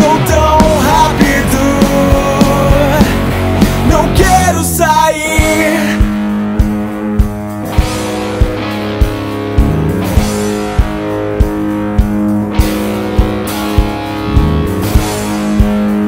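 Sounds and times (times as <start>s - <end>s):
thumping beat: 0.0s - 4.6s, 5.2s - 16.0s
rock song instrumental: 0.0s - 16.0s.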